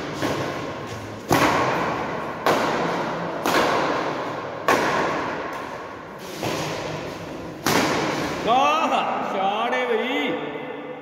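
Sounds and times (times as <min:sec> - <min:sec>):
racquet hitting shuttlecock: 0:00.0 - 0:08.4.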